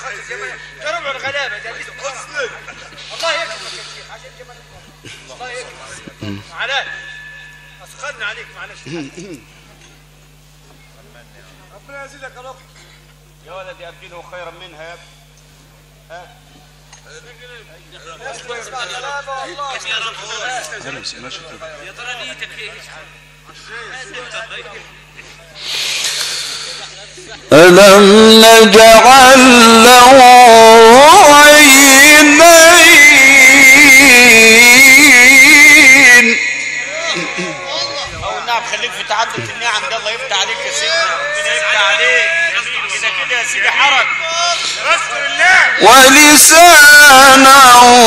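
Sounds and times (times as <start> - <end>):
steady low hum: 0.0 - 48.0
men calling out cries: 27.5 - 39.6
man chanting melismatic recitation: 27.5 - 48.0.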